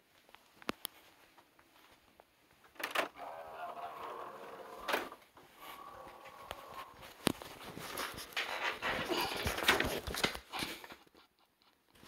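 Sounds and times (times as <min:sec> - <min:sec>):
rustling handling noise on microphone: 0:05.2 - 0:11.2.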